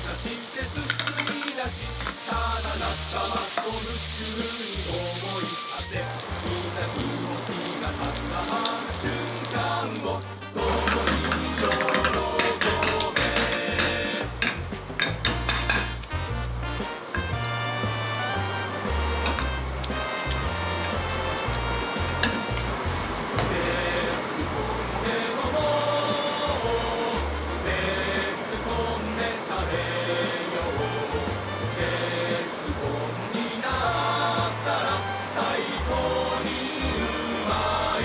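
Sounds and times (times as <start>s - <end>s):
pan and utensils clinking: 0.0s - 24.5s
background music with bass line: 0.0s - 38.0s
food sizzling in a pan: 0.0s - 38.0s.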